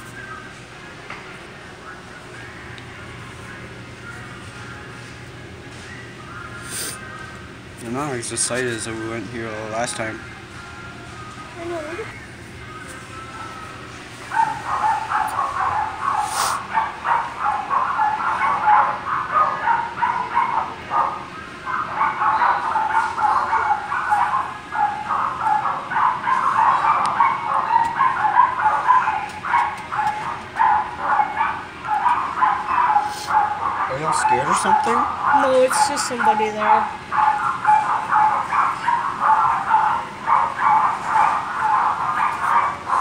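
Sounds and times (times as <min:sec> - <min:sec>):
small dogs barking and yapping: 0:13.0 - 0:43.0.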